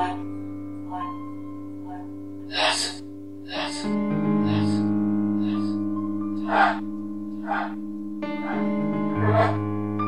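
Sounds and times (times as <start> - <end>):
piano-like chords: 0.0 - 10.0.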